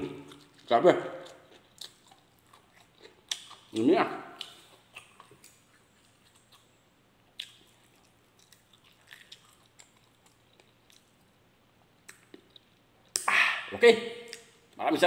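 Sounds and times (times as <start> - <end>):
faint chewing mouth clicks: 4.4 - 6.7.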